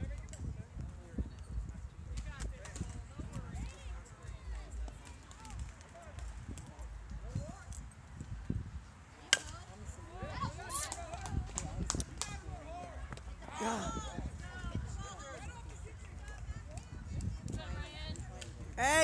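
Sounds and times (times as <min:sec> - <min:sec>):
spectators talking: 0:00.0 - 0:19.0
bat cracking against ball: 0:09.3 - 0:09.6.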